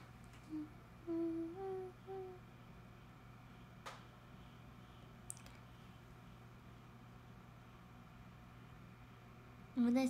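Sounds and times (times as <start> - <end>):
woman humming: 0.4 - 2.5.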